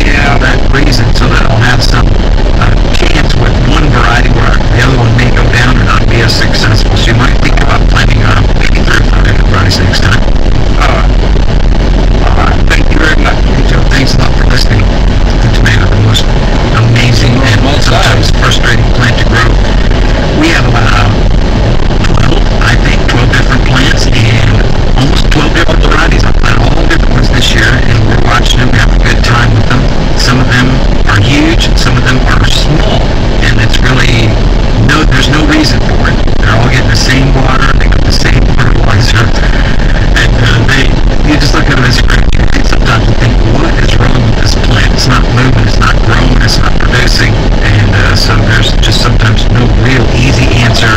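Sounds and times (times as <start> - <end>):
car driving low rumble: 0.0 - 50.9
indistinct voice: 0.0 - 50.9
wind on microphone: 0.0 - 50.9.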